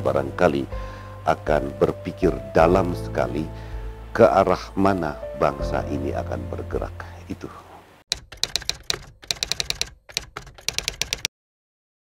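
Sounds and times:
keystroke clicks: 8.1 - 11.3.

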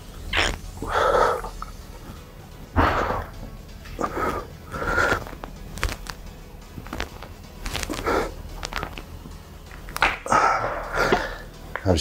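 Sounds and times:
person breathing out hard: 0.8 - 1.6, 4.0 - 5.4.

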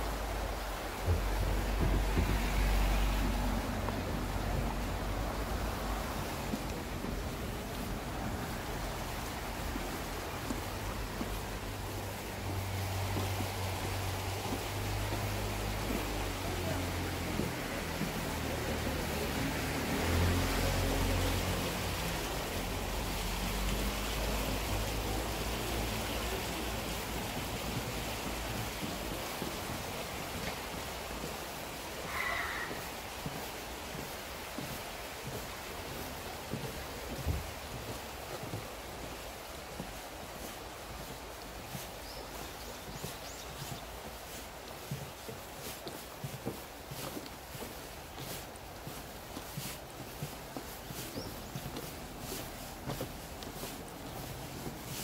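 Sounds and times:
steady background hiss: 0.0 - 55.0
vehicle low rumble: 0.0 - 55.0.

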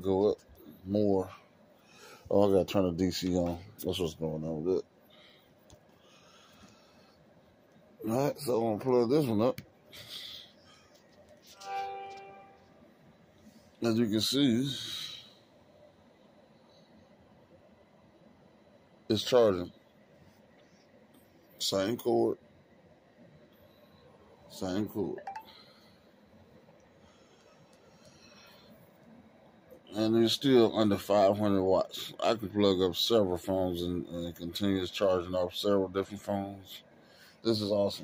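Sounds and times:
faint room tone: 0.0 - 38.0
phone chime: 11.6 - 12.7, 25.2 - 25.6.

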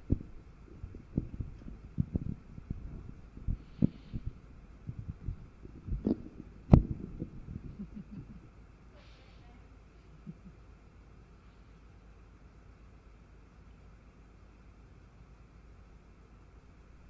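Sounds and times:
soft low thumps and knocks: 0.0 - 8.4.

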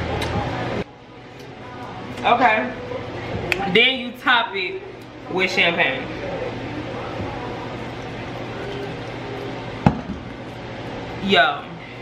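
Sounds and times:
steady low hum: 0.0 - 12.0
champagne cork popping: 9.8 - 10.3.

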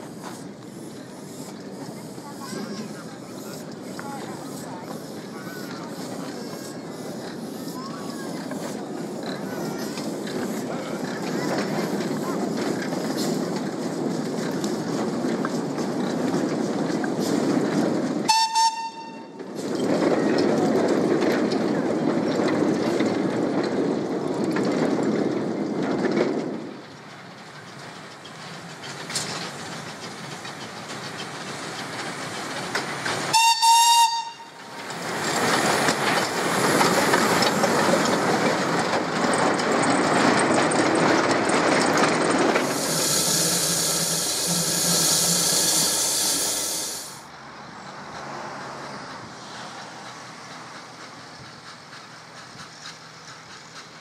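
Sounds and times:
wagons rumbling and clattering on track: 0.0 - 54.0
steam locomotive whistle blasts: 18.3 - 19.4, 33.3 - 34.6.

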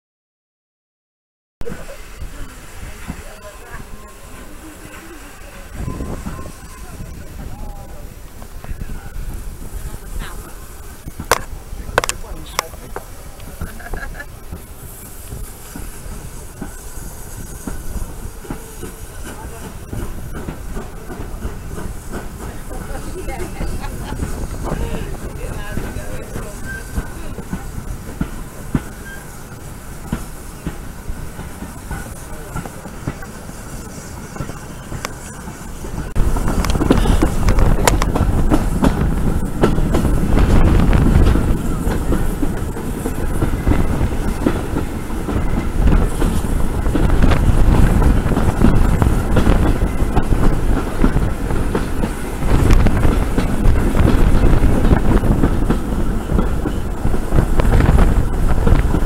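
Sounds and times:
train carriages rumbling on track: 1.6 - 59.0.

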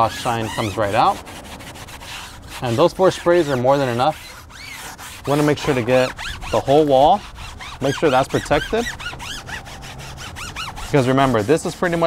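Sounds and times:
foam pad squeaking on tire: 0.0 - 12.0.

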